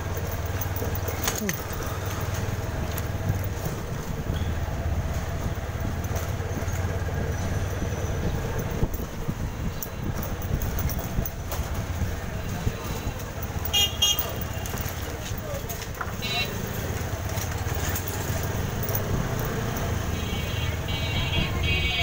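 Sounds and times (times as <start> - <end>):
passing traffic: 0.0 - 22.0.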